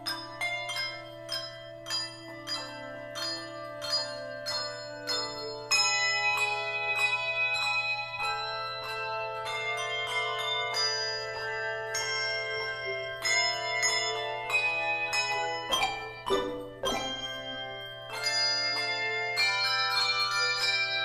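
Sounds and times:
handbells ringing chords: 0.0s - 21.0s.

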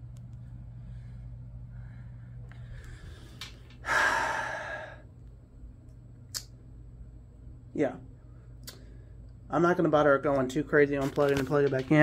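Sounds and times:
steady low hum: 0.0s - 12.0s
man breathing in: 0.8s - 5.1s
man sighing heavily: 3.8s - 5.0s.

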